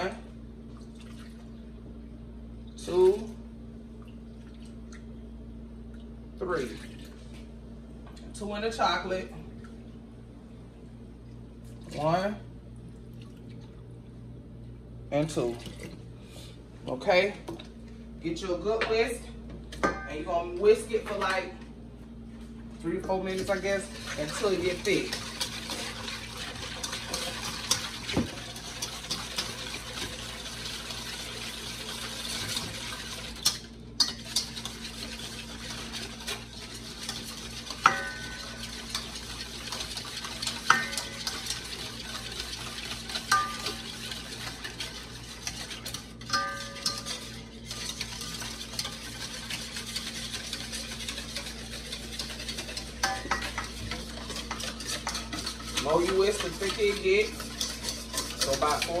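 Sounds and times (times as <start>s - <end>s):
whisk scraping metal bowl: 23.3s - 59.0s.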